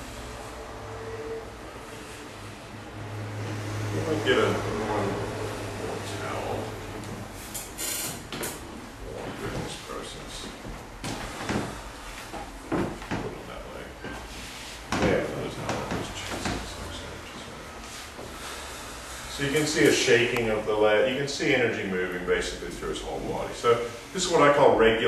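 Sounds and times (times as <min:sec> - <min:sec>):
knocks and rustles of handling: 0:08.3 - 0:16.8.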